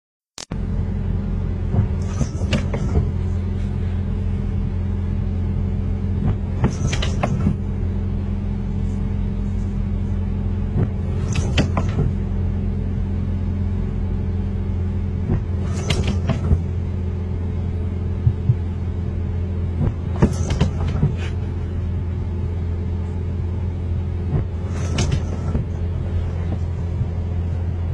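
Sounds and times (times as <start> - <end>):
low hum of car cabin: 0.5 - 27.9
windscreen wipers scraping wet glass: 1.7 - 4.6, 6.2 - 7.7, 8.7 - 12.3, 15.2 - 16.8, 19.6 - 21.8, 24.2 - 27.9.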